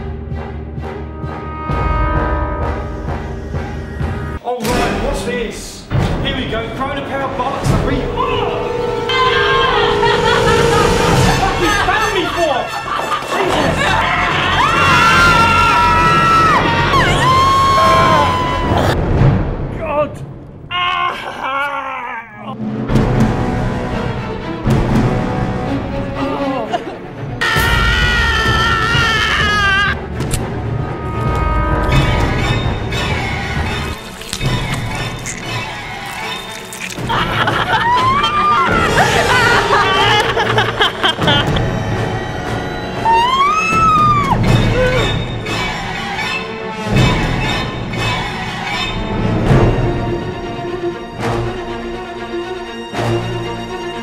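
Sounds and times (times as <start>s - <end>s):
scary film score music: 0.0s - 54.0s
held musical tone: 6.6s - 14.0s
people yelling and shrieking: 8.1s - 19.0s, 27.4s - 30.0s, 36.0s - 40.9s, 43.0s - 46.2s.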